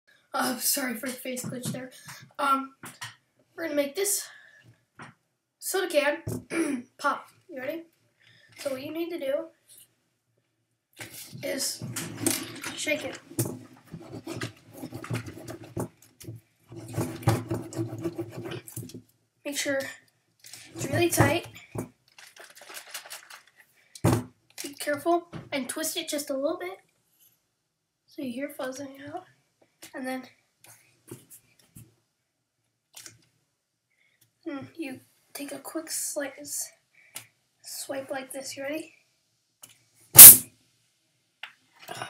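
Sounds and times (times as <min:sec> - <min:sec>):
plastic bottle being shaken: 0:20.4 - 0:24.8
plastic bottle crackle: 0:22.0 - 0:23.6.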